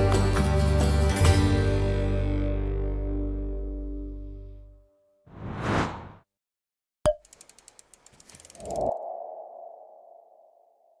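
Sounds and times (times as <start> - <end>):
quick run of ticks: 7.2 - 9.0.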